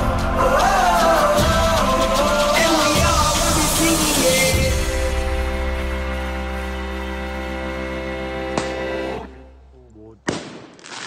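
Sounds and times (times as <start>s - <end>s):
background guitar music: 2.0s - 9.7s.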